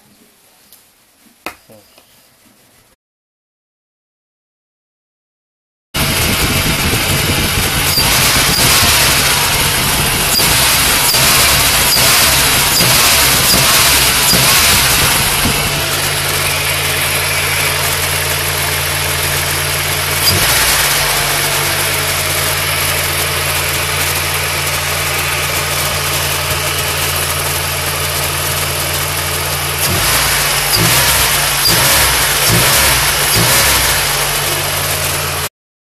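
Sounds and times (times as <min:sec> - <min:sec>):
car engine revving and idling: 0:06.0 - 0:35.5.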